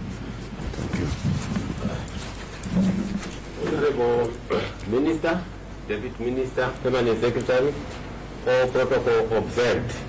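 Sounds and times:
man talking: 3.6 - 10.0.

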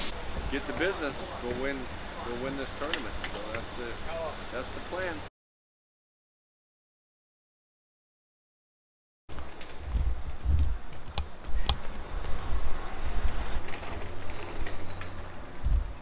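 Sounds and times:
wind buffeting microphone: 9.3 - 16.0.

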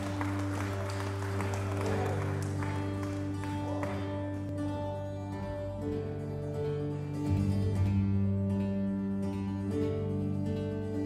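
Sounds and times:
audience applause: 0.0 - 4.5.

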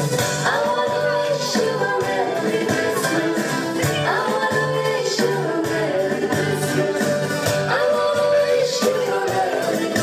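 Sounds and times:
dance music with singing: 0.0 - 10.0.

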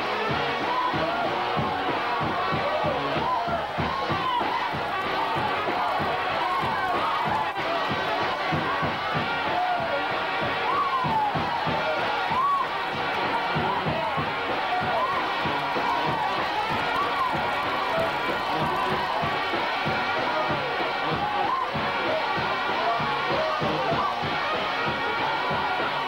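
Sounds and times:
congregation shouting and cheering: 0.0 - 26.0
lively church music: 0.0 - 26.0.

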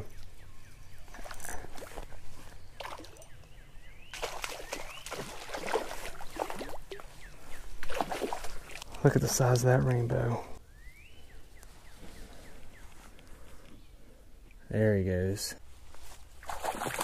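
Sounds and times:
fish splashing in water: 4.1 - 7.1, 7.8 - 8.9, 16.4 - 17.0.

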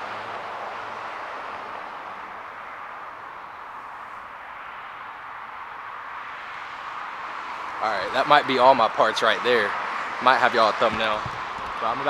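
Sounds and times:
road traffic hiss: 0.0 - 12.0.

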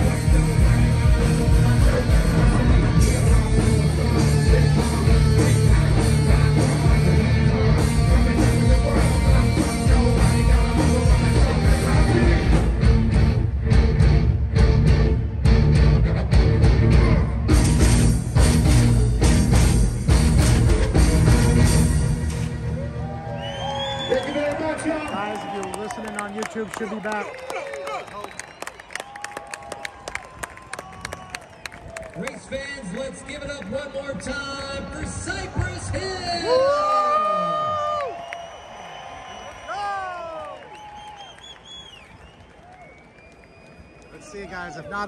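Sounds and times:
rock band chord: 0.0 - 22.6
scattered applause: 22.8 - 45.0.

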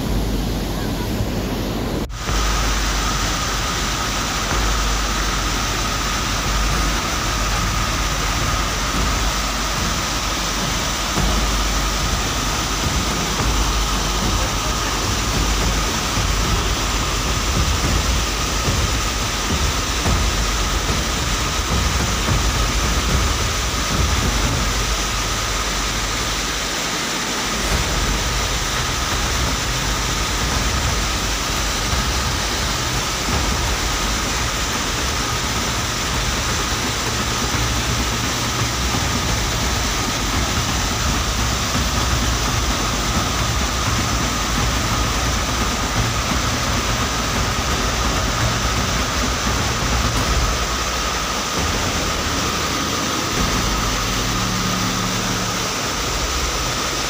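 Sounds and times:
flood water rushing: 0.0 - 57.0.

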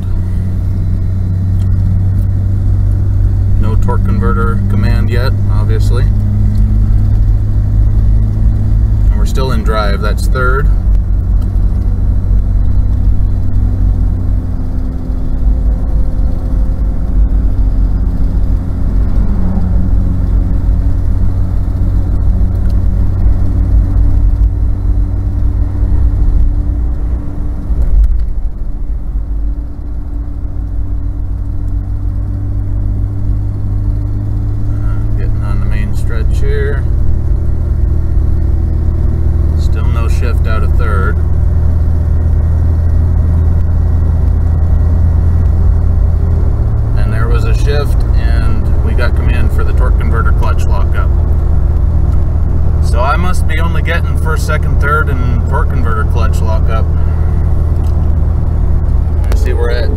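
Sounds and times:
car engine accelerating: 0.0 - 59.9
road noise inside car: 0.0 - 59.9.

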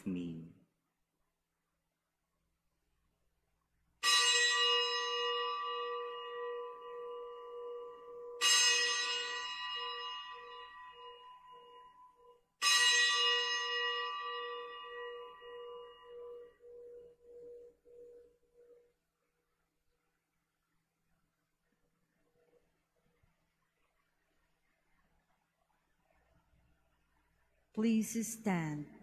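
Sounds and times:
altar bell ringing: 4.0 - 19.0.

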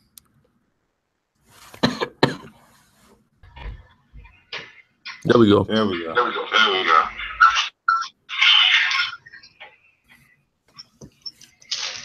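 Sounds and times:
person coughing: 1.8 - 2.6.

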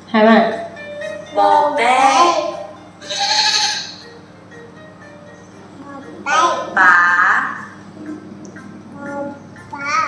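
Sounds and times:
background music: 0.0 - 10.0
woman speaking: 0.1 - 0.7, 6.7 - 7.8
small child speaking: 5.8 - 6.8, 9.0 - 10.0.

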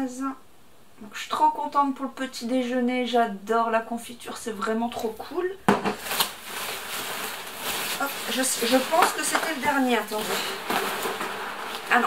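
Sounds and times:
plastic packaging rustling: 5.7 - 12.0.

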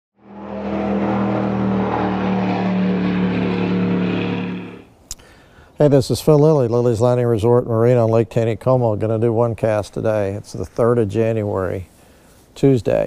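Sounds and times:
engine running: 0.1 - 5.0.

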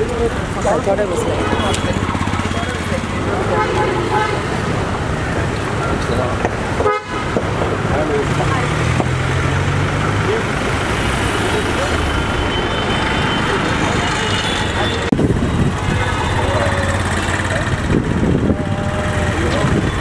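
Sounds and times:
people's voices: 0.0 - 20.0
street traffic: 0.0 - 20.0
car horns tooting: 1.3 - 5.1, 6.7 - 7.6, 11.9 - 17.4.

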